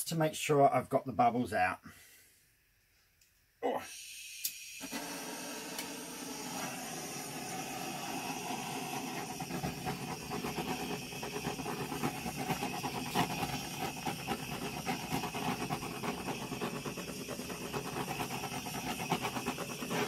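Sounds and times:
blowtorch hissing: 3.8s - 20.0s
fast uneven crackle: 7.8s - 20.0s.

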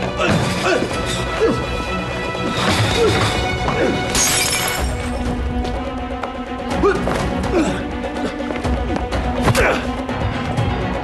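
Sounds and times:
tense film score: 0.0s - 11.0s
glass bottle smashing: 4.1s - 5.2s.

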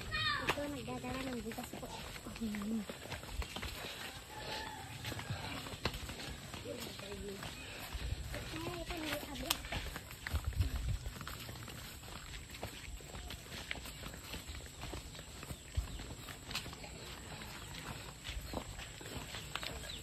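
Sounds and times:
footsteps on a dirt path: 0.0s - 20.0s.

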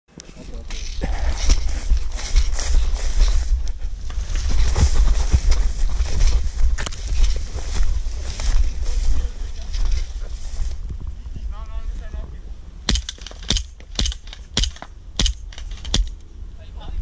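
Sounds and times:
low rumble of movement: 0.1s - 17.0s
footsteps in grass: 0.2s - 11.1s
grass swishing against legs: 0.4s - 10.8s.

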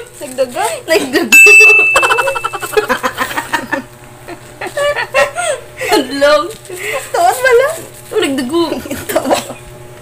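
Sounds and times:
bell-like ding: 1.3s - 2.9s
woman giggling: 1.9s - 6.2s, 8.6s - 9.7s.

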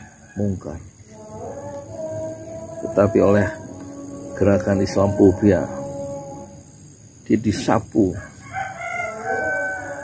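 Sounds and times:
rooster crowing: 0.0s - 6.8s, 8.1s - 10.0s.

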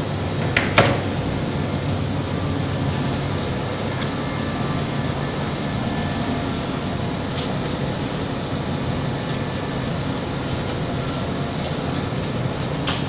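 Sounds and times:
cnc wood router running: 0.8s - 13.0s.

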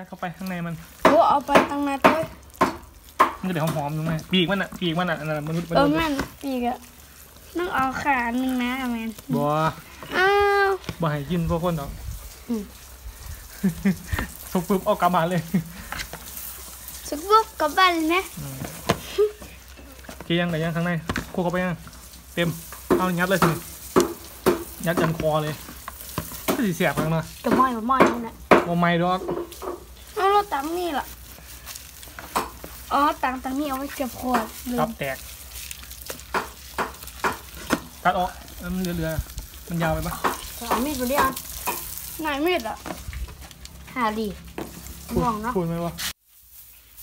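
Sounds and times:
hands squelching raw chicken: 0.4s - 45.1s
man talking: 9.3s - 9.8s
hands squishing paste into chicken: 28.4s - 43.8s.

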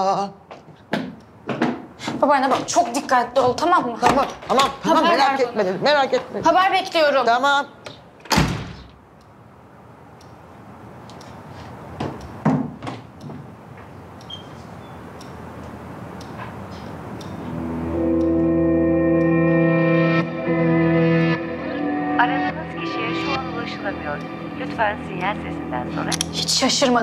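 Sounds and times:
front door thudding shut: 8.2s - 9.0s
soft dramatic music: 17.5s - 27.0s.

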